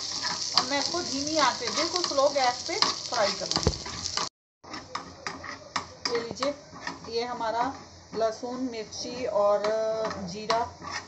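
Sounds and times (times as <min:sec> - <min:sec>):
light sizzle of oil: 0:00.0 - 0:11.0.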